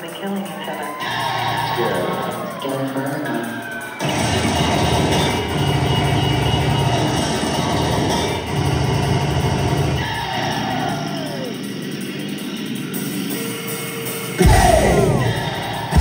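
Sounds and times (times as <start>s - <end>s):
loud industrial music: 0.0s - 16.0s
falling synth sweep: 0.9s - 16.0s.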